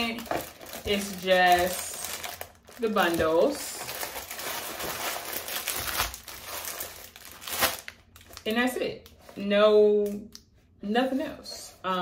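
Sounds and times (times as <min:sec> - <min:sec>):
plastic bags crinkling: 0:00.0 - 0:09.0.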